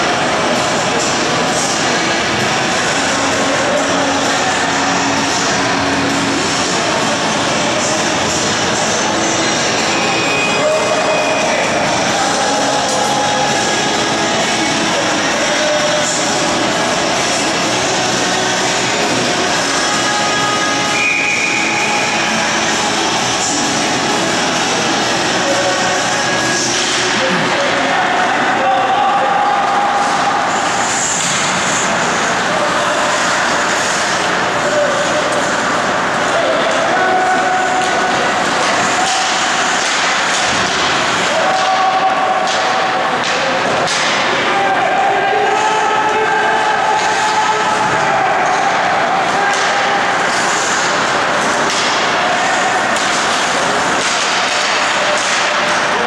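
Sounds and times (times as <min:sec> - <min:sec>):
crowd voices din: 0:00.0 - 0:56.0.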